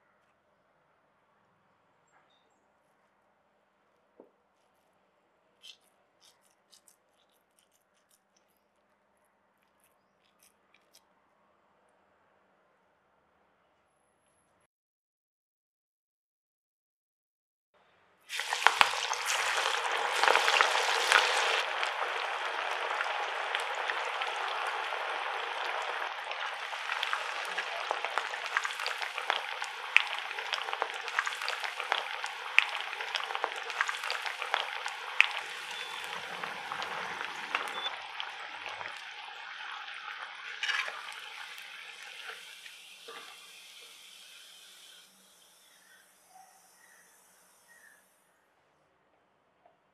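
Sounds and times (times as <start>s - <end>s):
oil crackles and pops: 5.6s - 11.2s, 18.3s - 45.1s
food sizzling in hot oil: 18.3s - 48.0s.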